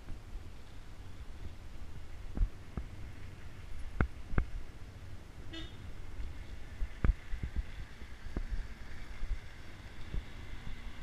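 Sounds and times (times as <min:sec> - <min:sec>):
low riding rumble: 0:00.0 - 0:11.0
vehicle horn toot: 0:05.5 - 0:05.8.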